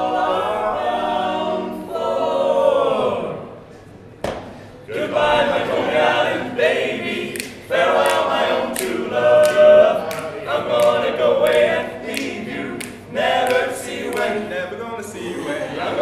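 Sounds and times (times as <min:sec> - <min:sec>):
male quartet singing a cappella: 0:00.0 - 0:03.5, 0:04.9 - 0:16.0.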